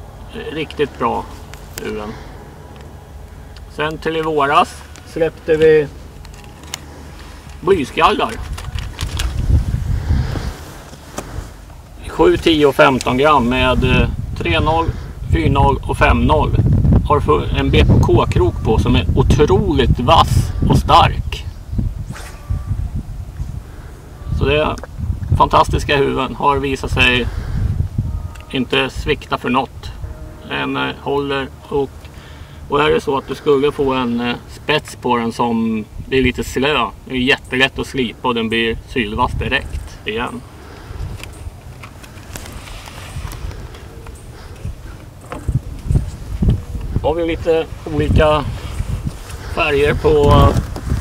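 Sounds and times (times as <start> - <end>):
wind buffeting microphone: 0.8 - 30.6, 38.5 - 51.0
plastic packets and box clicking: 8.2 - 9.5.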